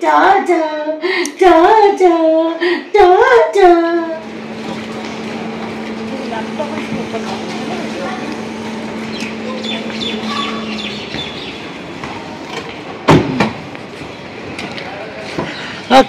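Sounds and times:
steady hum: 2.5s - 15.8s
faint murmured voices: 3.7s - 16.0s.

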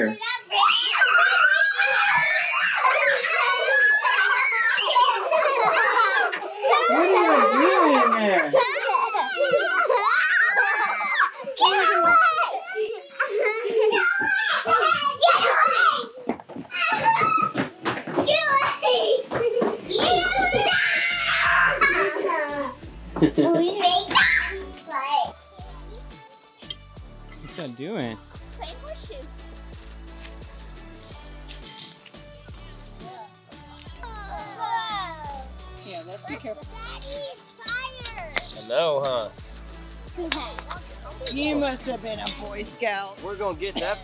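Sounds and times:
children shouting and laughing: 0.0s - 26.8s, 28.5s - 29.5s, 31.0s - 39.4s, 40.0s - 44.0s
background music: 2.8s - 10.9s, 17.0s - 44.0s
low steady beat: 39.3s - 42.6s.

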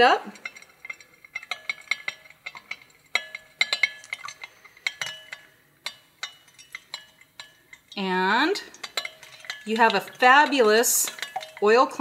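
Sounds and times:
spoon clinking against glass: 0.3s - 12.0s.

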